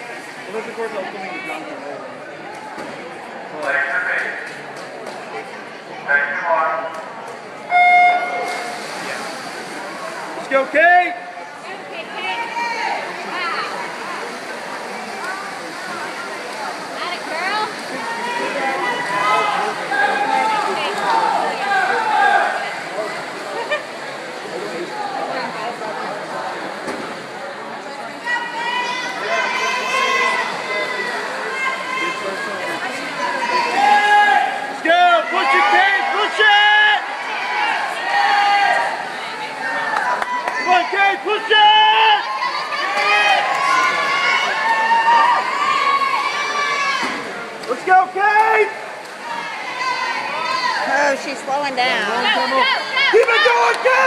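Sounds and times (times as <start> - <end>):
crowd din: 0.0 - 54.0
spectators shouting and cheering: 0.0 - 54.0.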